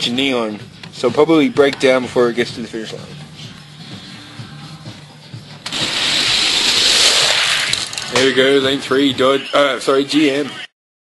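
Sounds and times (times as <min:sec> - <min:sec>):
toy cars rattling down plastic track: 0:05.8 - 0:08.3.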